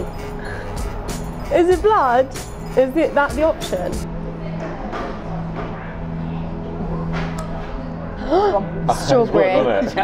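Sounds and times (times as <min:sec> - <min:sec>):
murmur of voices: 0:02.9 - 0:10.0.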